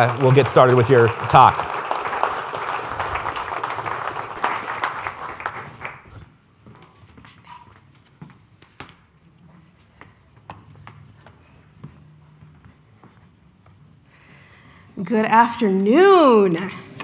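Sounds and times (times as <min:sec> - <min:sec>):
audience applauding: 0:00.0 - 0:06.3
footsteps: 0:05.6 - 0:14.8.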